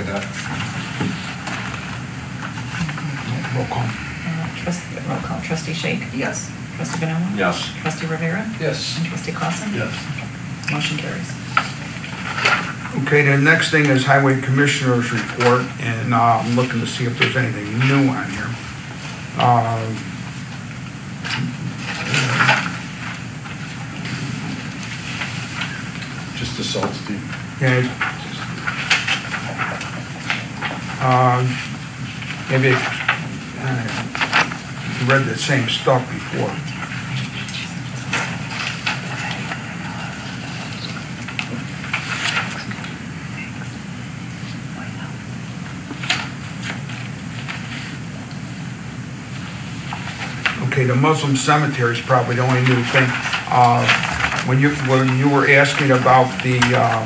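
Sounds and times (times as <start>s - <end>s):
low room hum: 0.0s - 57.0s
steady background hiss: 0.0s - 57.0s
paper rustling: 21.2s - 43.7s, 45.6s - 48.4s, 49.4s - 57.0s.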